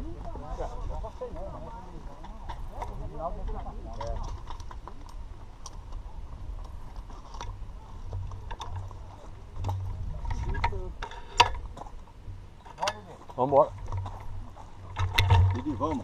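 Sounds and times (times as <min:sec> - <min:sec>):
low steady rumble: 0:00.0 - 0:16.0
bicycle metallic clicks and knocks: 0:06.7 - 0:08.9, 0:09.6 - 0:11.9, 0:12.6 - 0:13.1.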